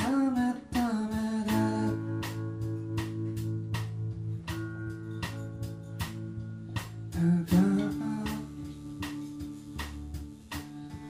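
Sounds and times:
man singing: 0.0s - 2.4s, 7.1s - 9.0s
electric bass guitar: 0.0s - 11.0s
strummed acoustic guitar: 0.0s - 11.0s.

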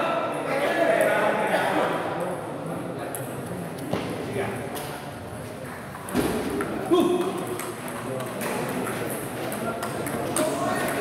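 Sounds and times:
voices in a large hall: 0.0s - 11.0s
ping pong ball clicking: 7.2s - 11.0s.

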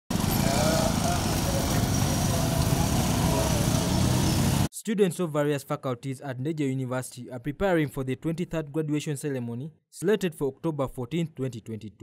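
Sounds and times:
motorcycle engines: 0.1s - 4.7s
passing traffic: 0.1s - 4.7s.

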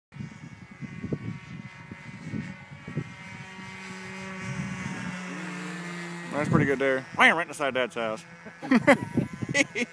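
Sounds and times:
model airplane motor whining: 0.2s - 9.9s.

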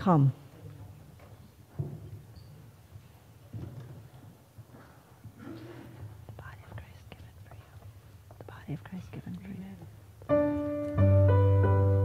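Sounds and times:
people whispering: 5.4s - 10.0s.

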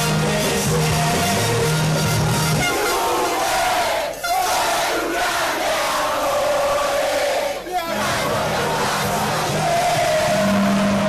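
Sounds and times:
crowd chanting: 2.6s - 11.0s.

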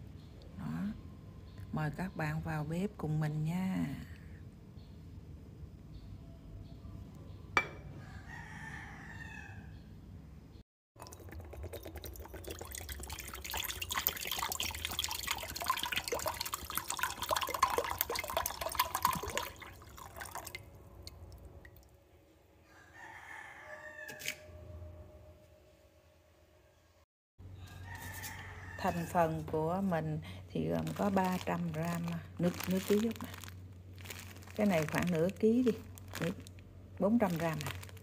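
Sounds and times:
rooster crowing: 7.9s - 9.7s, 22.6s - 24.8s, 27.5s - 29.3s
coconut water pouring into bowl: 11.0s - 21.4s.

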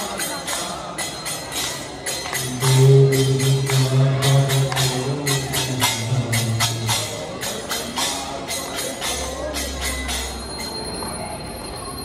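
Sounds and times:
steady ringing tone: 8.6s - 12.0s.

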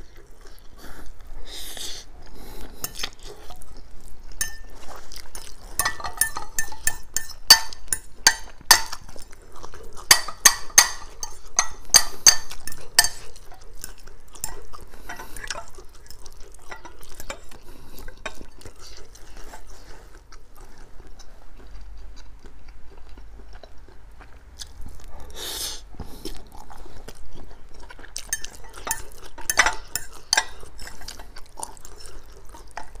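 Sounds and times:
fork clinking on ceramic bowl: 4.4s - 4.8s, 5.7s - 9.1s, 10.1s - 13.4s, 14.4s - 15.4s, 28.3s - 31.3s.

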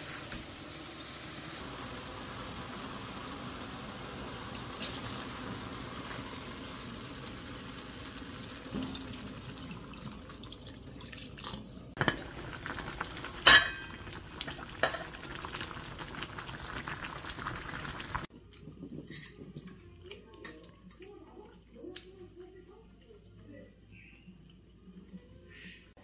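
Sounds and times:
food sizzling: 0.0s - 19.8s
utensils clinking against pots: 11.4s - 12.3s, 13.4s - 14.1s, 19.0s - 21.1s.

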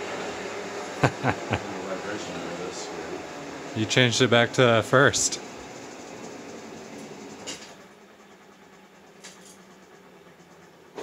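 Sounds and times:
motor and drivetrain humming: 0.0s - 11.0s.

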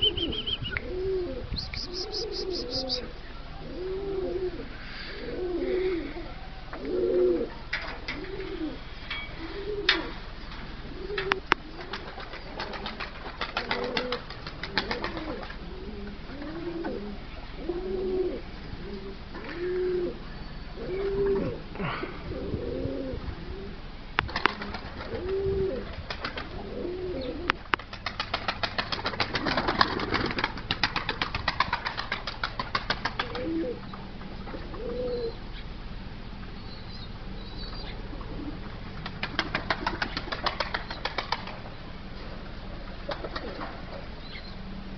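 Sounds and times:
pigeons cooing: 0.0s - 35.7s, 37.0s - 42.2s, 43.0s - 44.8s
wings flapping: 1.6s - 3.1s, 9.8s - 15.8s, 24.2s - 33.8s, 38.9s - 41.7s, 43.0s - 44.0s.

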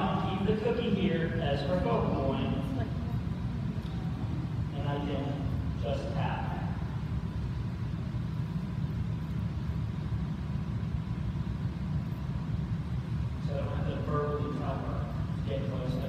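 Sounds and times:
man speaking: 0.0s - 2.8s, 4.7s - 6.9s, 13.4s - 16.0s
low background rumble: 0.0s - 16.0s.

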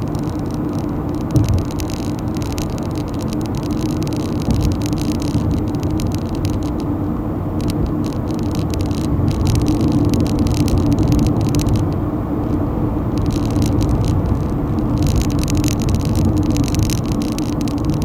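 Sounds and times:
engine and tyre hum: 0.0s - 18.0s.

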